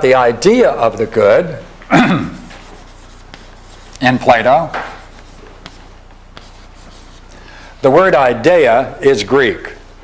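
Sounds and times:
chalk scratching on blackboard: 0:02.3 - 0:07.4
chalk tap: 0:02.4 - 0:07.4
man speaking: 0:04.0 - 0:04.8.

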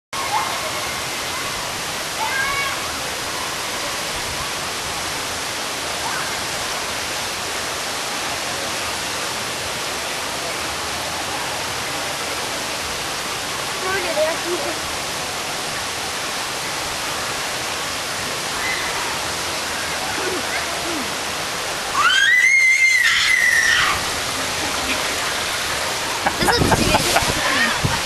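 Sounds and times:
flowing falling water: 0:00.2 - 0:28.0.

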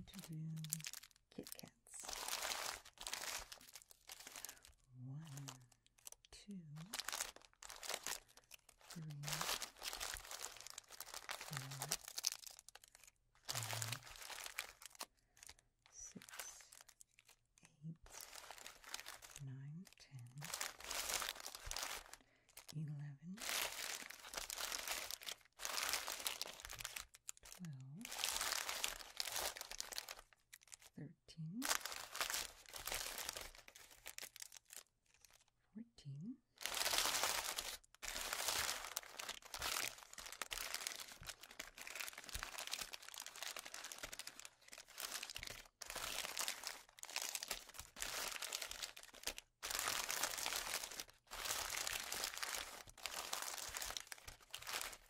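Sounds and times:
plastic wrappers crinkling: 0:00.0 - 0:22.8, 0:23.4 - 0:31.0, 0:31.6 - 0:35.5, 0:36.6 - 0:55.0.

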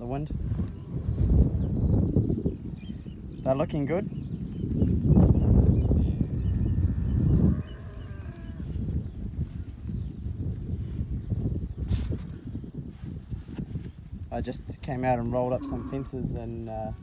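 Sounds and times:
wind buffeting microphone: 0:00.0 - 0:17.0
cow mooing: 0:06.7 - 0:08.6, 0:15.5 - 0:16.2.

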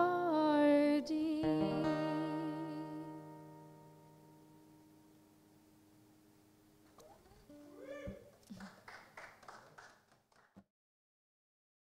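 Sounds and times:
piano and guitar chord: 0:01.4 - 0:05.6.

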